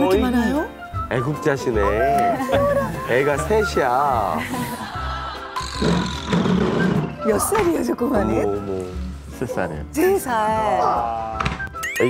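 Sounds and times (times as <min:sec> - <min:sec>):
background music with held tones: 0:00.0 - 0:12.0.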